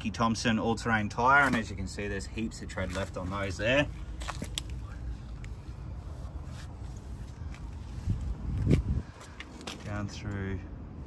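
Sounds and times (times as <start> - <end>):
footsteps on pavement: 2.7 - 5.6, 6.6 - 10.4.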